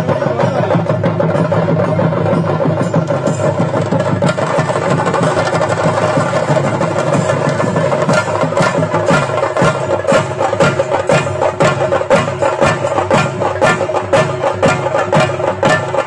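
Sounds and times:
dense live drumming: 0.0 - 16.0.

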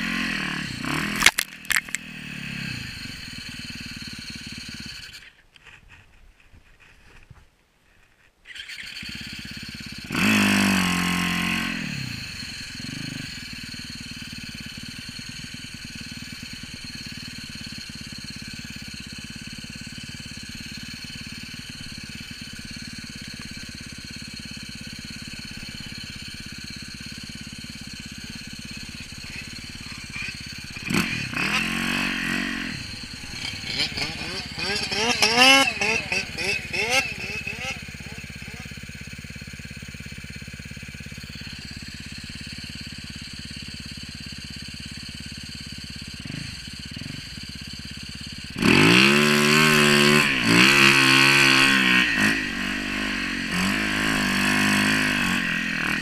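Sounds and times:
motorcycle engine revving: 0.0 - 5.4, 8.5 - 56.0.

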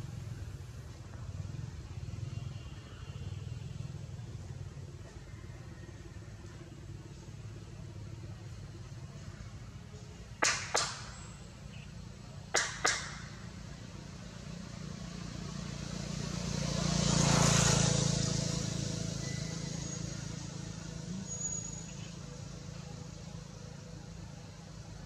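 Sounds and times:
sharp cracks: 10.4 - 11.3, 12.5 - 13.5
vehicle passing by: 13.3 - 25.0.

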